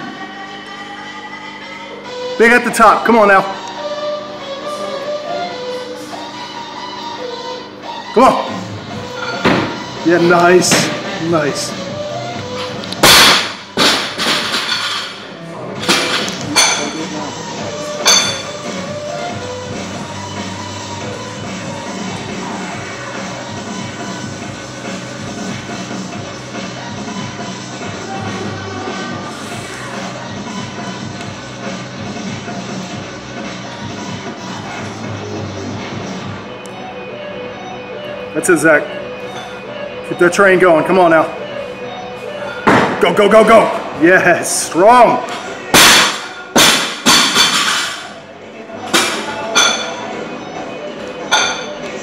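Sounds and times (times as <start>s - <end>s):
background music: 0.0s - 52.0s.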